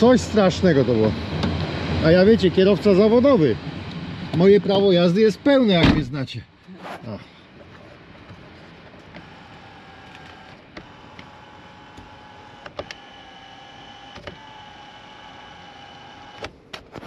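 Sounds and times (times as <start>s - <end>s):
mirror motor whirring: 9.1s - 17.0s
motor click: 9.2s - 14.8s.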